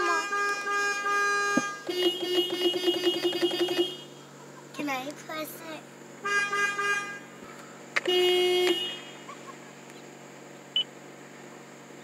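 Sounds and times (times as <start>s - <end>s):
car horn honk: 0.0s - 4.2s, 6.2s - 7.3s, 8.0s - 9.3s
car engine idling hum: 0.1s - 12.0s.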